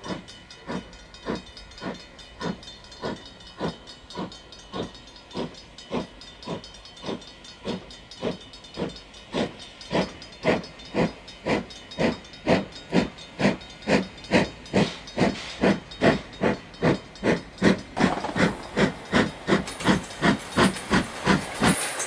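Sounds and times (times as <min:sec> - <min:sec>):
steady hiss of steam: 0:00.0 - 0:22.0
steam locomotive chuffing: 0:00.0 - 0:22.0.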